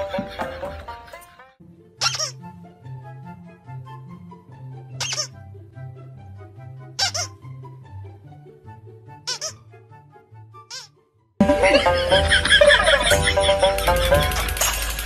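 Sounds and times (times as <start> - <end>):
squeaky plush toy squeaking: 2.0 - 2.4, 5.0 - 5.4, 7.0 - 7.4, 9.2 - 9.6, 10.6 - 10.9
background music with bass line: 11.4 - 15.0.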